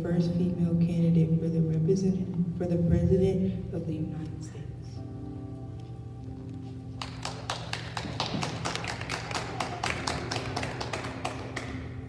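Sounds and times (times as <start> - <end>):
soft keyboard music: 0.0 - 12.0
people clapping: 6.9 - 12.0.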